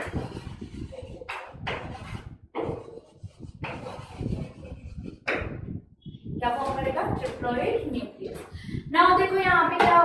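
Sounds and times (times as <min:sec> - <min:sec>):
chalk scratching on chalkboard: 0:00.0 - 0:05.4.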